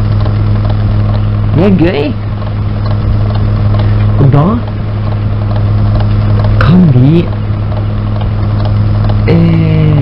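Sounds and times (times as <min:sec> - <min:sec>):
tape hum and hiss: 0:00.0 - 0:10.0.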